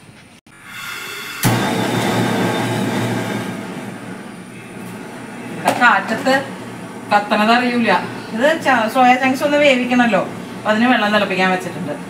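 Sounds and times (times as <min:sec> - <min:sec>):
gas burner igniting whoomp: 0:00.5 - 0:11.9
gas hissing: 0:00.5 - 0:12.0
rush of flame: 0:00.6 - 0:04.5.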